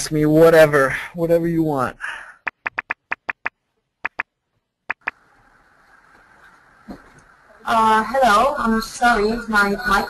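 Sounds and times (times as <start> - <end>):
short sharp clicks: 2.5 - 4.3.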